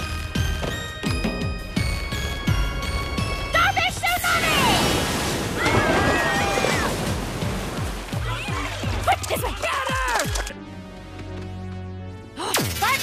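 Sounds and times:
background music: 0.0s - 13.0s
voices shouting and yelling: 3.5s - 7.1s, 8.1s - 10.5s
water splashing: 4.1s - 10.5s.

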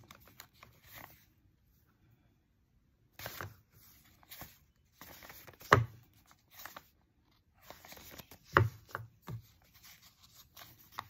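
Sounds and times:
paper envelopes rustling: 0.0s - 1.3s, 3.2s - 11.0s
paper slapping paper: 3.2s - 6.9s, 7.6s - 11.0s.

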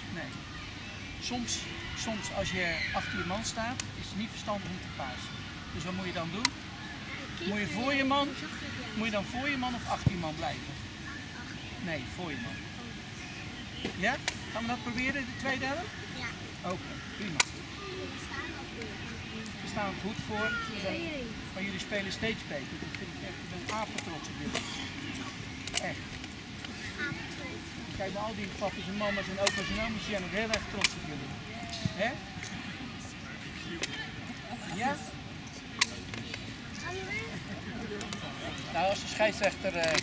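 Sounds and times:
chatter of children and adults: 0.0s - 40.0s
children's voices: 6.9s - 9.1s, 17.7s - 19.5s, 26.7s - 27.7s, 36.2s - 38.7s.

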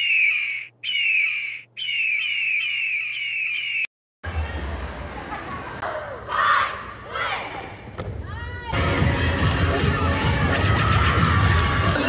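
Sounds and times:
eagle calling: 0.0s - 3.9s.

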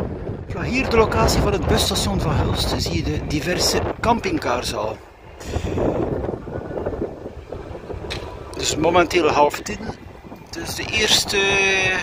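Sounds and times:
storm wind buffeting microphone: 0.0s - 12.0s.

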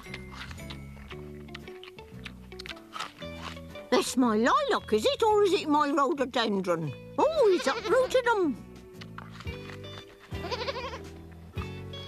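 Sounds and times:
music with plucked notes: 0.0s - 12.0s
goat bleating: 7.2s - 8.3s, 10.2s - 11.2s.

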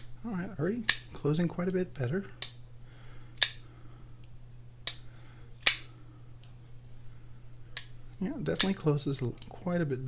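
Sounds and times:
folding knife clicking open and shut: 8.6s - 8.8s.

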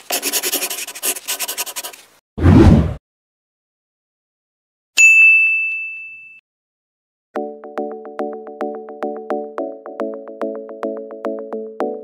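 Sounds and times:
bell-like ding: 5.0s - 6.4s.

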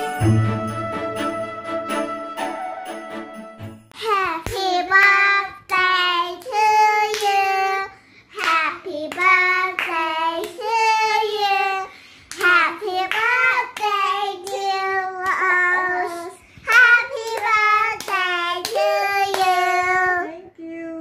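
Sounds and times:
hand claps: 8.4s - 10.6s, 12.3s - 15.6s, 16.7s - 19.8s.

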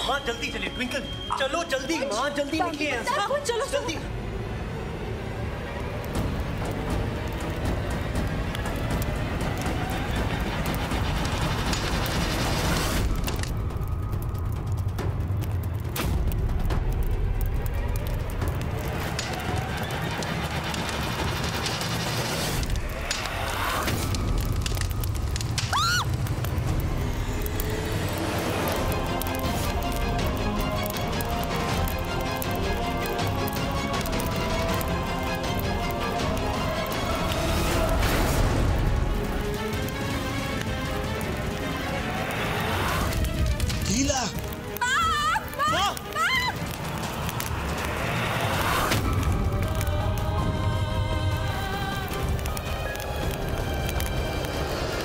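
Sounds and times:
dramatic background score: 0.0s - 55.0s.

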